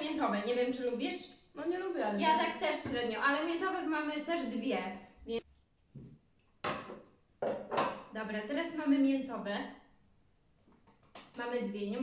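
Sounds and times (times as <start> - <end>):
plates knocking on tabletop: 6.6 - 8.1.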